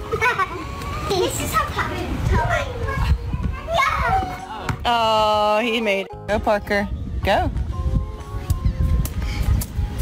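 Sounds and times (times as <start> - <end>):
music: 5.6 - 10.0.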